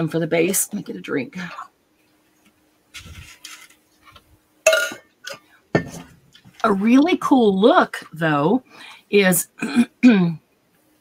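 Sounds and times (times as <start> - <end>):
drink container clink: 4.7 - 6.1.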